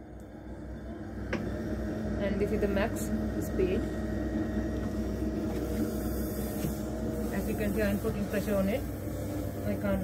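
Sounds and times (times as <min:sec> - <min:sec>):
pottery wheel motor humming: 0:00.0 - 0:10.0.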